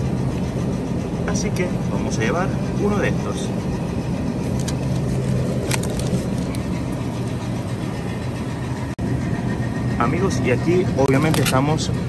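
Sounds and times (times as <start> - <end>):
refrigerated display cases humming: 0.0 - 12.0.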